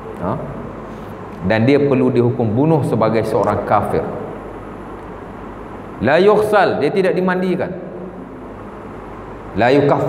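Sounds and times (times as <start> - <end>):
high-pitched whine: 0.0 - 10.0.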